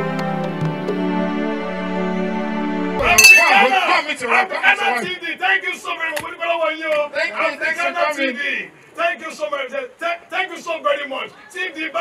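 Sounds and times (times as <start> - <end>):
men's excited voices: 3.0 - 12.0
small hand cymbals clinking: 3.2 - 3.6.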